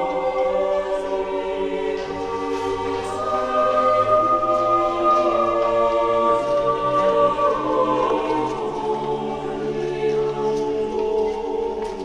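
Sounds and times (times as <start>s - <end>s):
choir singing slow chords: 0.0s - 12.0s.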